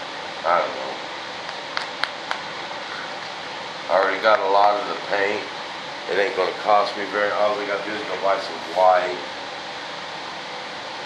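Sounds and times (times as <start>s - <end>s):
fan running: 0.0s - 11.0s.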